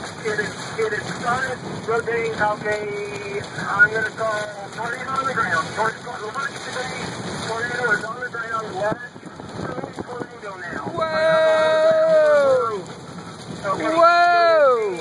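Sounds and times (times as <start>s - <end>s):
steady rain falling: 0.0s - 15.0s
voices talking: 0.0s - 15.0s.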